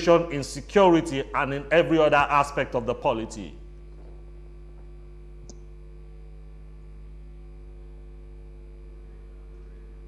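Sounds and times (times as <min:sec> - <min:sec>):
electrical mains hum: 0:00.0 - 0:10.0
faint click: 0:05.5 - 0:05.7.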